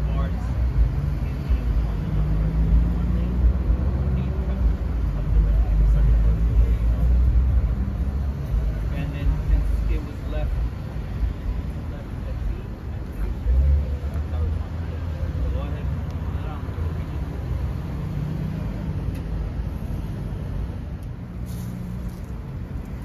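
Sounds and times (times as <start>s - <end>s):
people talking: 0.0s - 7.2s, 8.5s - 10.6s, 11.7s - 17.6s.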